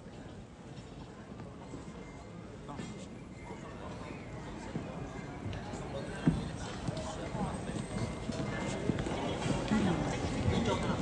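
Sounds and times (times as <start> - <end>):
voices in a reverberant hall: 0.0 - 11.0.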